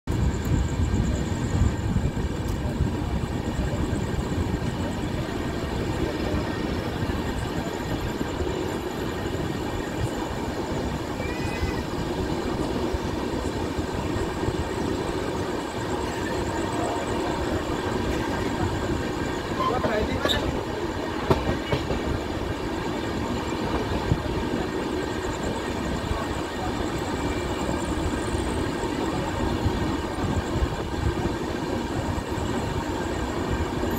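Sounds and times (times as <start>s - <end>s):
faint high whine: 0.1s - 33.9s
train wheels rumbling on track: 0.1s - 33.9s.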